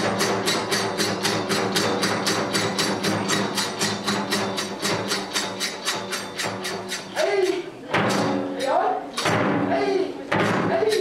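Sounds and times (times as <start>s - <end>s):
taiko drum: 0.0s - 7.2s, 7.9s - 8.6s, 9.2s - 9.7s, 10.3s - 10.9s
small hand cymbals: 0.0s - 9.3s.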